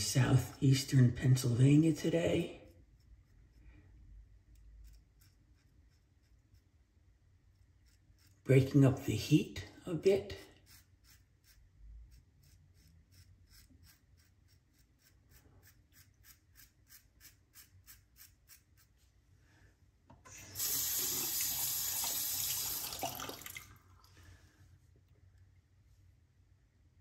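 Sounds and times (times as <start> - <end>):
razor scraping stubble: 1.4 - 19.2
water tap running: 20.3 - 23.8.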